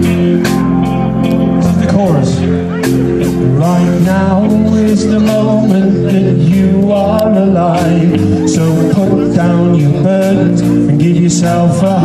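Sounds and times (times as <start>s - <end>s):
guitar strumming chords: 0.0s - 12.0s
live band music: 0.0s - 12.0s.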